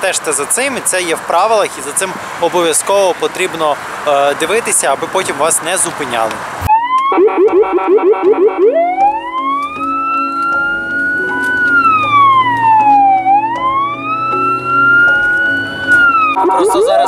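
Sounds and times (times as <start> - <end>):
police siren: 6.7 - 17.0.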